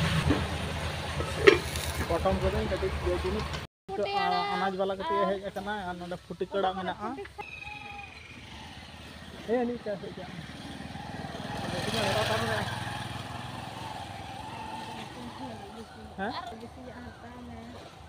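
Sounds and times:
motorcycle passing by: 0.0s - 3.6s, 7.4s - 18.0s.

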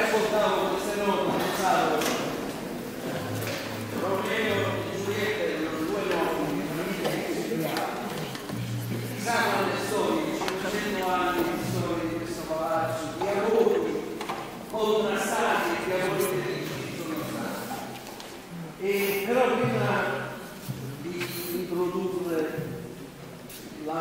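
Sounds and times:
young voices talking: 0.0s - 19.0s.

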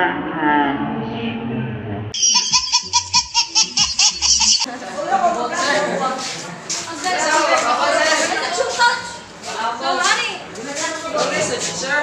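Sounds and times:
person laughing: 2.2s - 4.7s
people talking: 2.4s - 12.0s.

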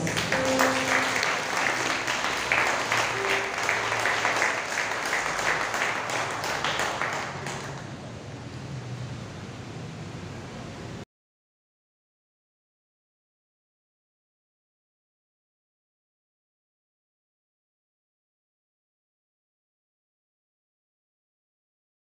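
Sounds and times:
congregation applauding: 0.0s - 8.0s.

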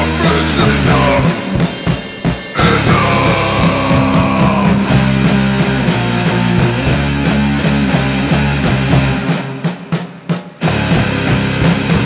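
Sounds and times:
loud rock band music: 0.0s - 12.0s.

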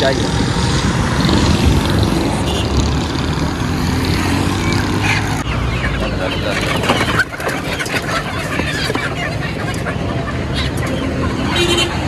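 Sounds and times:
motorcycle engine drone: 0.0s - 6.8s
road traffic passing: 0.0s - 12.0s.

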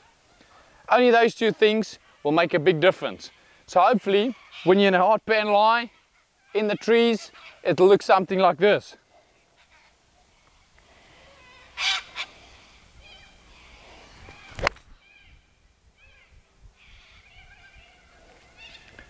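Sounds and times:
birds calling: 0.0s - 19.0s
man speaking: 0.9s - 5.9s, 6.5s - 9.0s
bird squawk: 3.1s - 5.0s, 5.7s - 7.7s, 9.5s - 10.4s, 11.1s - 19.0s.

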